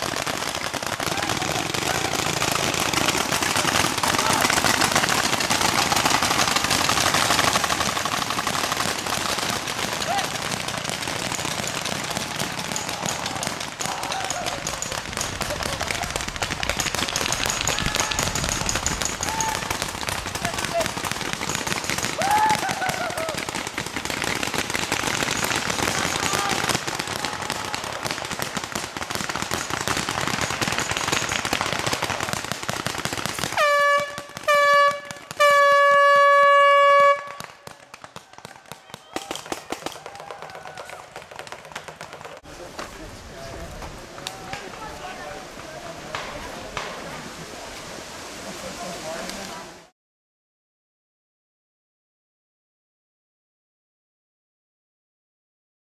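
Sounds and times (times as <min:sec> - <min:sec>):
paintball marker fire: 0:00.0 - 0:42.9
distant shouting: 0:09.7 - 0:16.2, 0:17.5 - 0:21.0, 0:22.0 - 0:23.6, 0:25.9 - 0:28.8
air horn blasts: 0:33.6 - 0:37.4.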